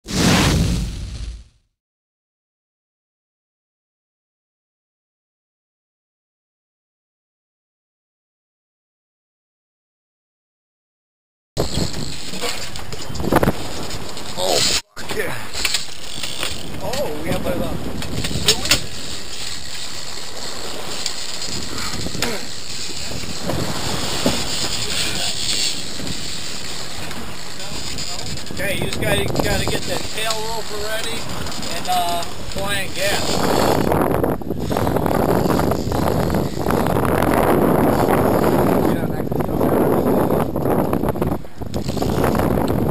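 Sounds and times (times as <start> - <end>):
wind: 0.0 - 1.5, 11.6 - 42.9
whoosh with low rumble: 0.0 - 1.6
sea: 11.6 - 42.9.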